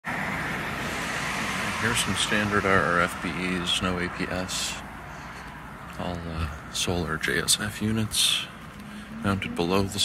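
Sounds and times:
distant road traffic: 0:00.0 - 0:10.0
man's voice: 0:09.2 - 0:10.0.

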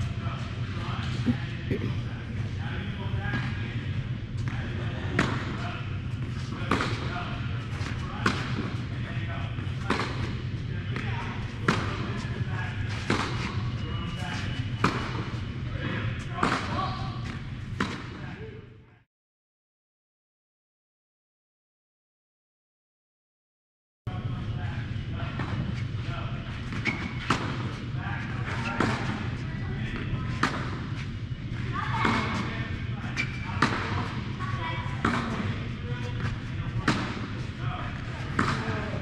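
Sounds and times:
steady low hum: 0:00.0 - 0:19.0, 0:24.1 - 0:39.0.

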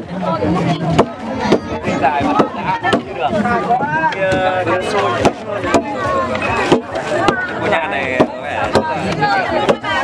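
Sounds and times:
people talking: 0:00.0 - 0:10.0.

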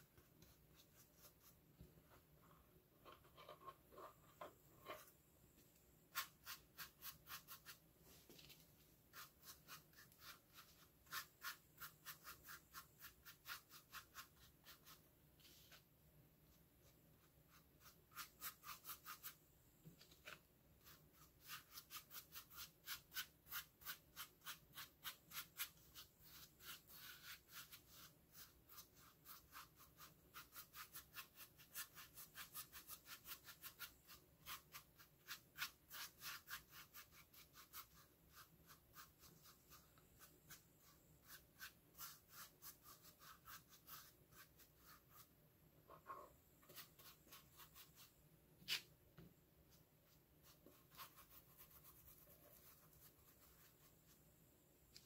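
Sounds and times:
paintbrush scratching on plastic: 0:06.1 - 0:07.8, 0:08.5 - 0:15.8, 0:16.8 - 0:19.4, 0:20.1 - 0:45.3, 0:45.9 - 0:48.9, 0:50.0 - 0:54.2.

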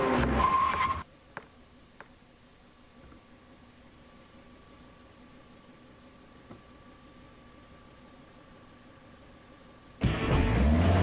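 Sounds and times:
car tyres squealing: 0:00.0 - 0:01.0.

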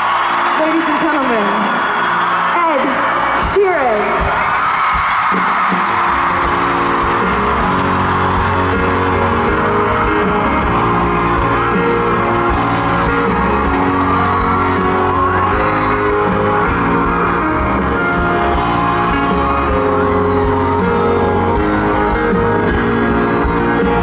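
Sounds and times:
crowd cheering and whooping: 0:00.0 - 0:24.0
music over arena sound system: 0:00.0 - 0:24.0.

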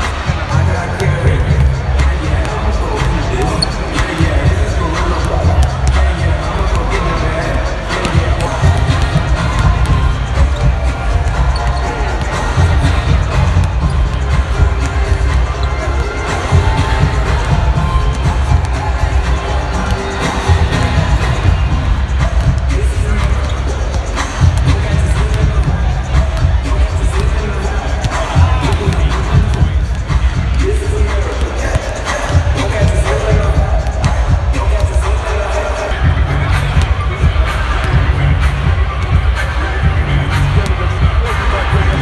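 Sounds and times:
arena music with heavy beat: 0:00.0 - 0:42.0
chatter of people: 0:00.0 - 0:42.0.

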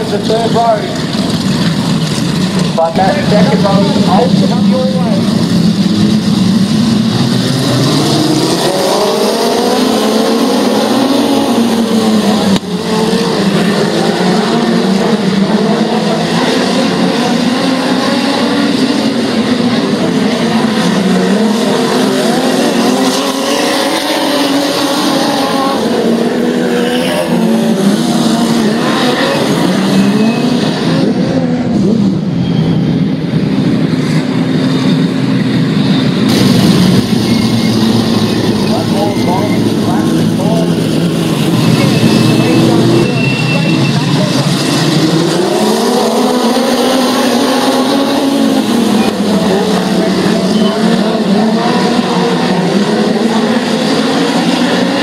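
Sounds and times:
race car engines revving: 0:00.0 - 0:55.0.

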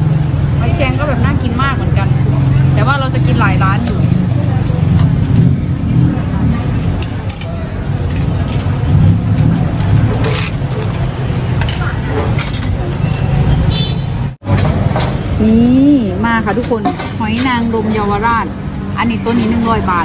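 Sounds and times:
traffic rumble: 0:00.0 - 0:20.0
clatter: 0:03.8 - 0:13.7.

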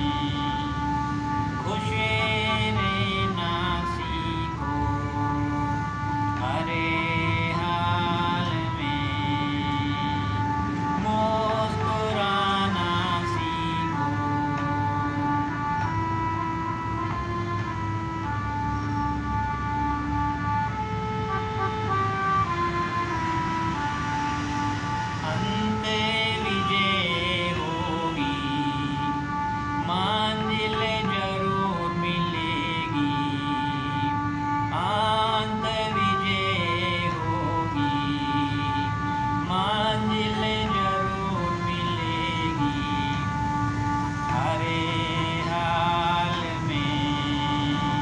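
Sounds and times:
harmonium melody: 0:00.0 - 0:48.0.

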